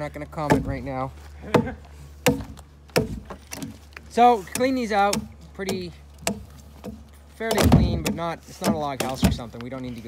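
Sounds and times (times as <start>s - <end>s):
axe chopping into log: 0.4s - 0.9s, 1.5s - 3.8s, 4.5s - 9.5s.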